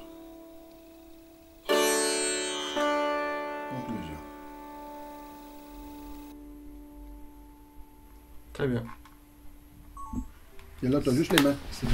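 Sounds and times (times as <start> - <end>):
sitar note ringing: 0.0 - 10.4.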